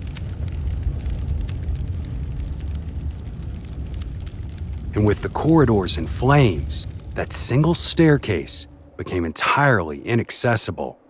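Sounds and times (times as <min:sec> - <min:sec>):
fire crackling: 0:00.0 - 0:11.0
fire rumbling: 0:00.0 - 0:11.0.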